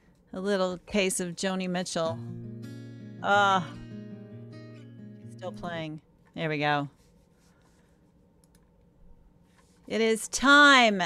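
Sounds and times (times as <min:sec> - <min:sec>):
woman speaking: 0:00.3 - 0:02.2, 0:03.2 - 0:03.8, 0:05.4 - 0:07.0, 0:09.9 - 0:11.0
computer mouse clicks: 0:08.4 - 0:08.8.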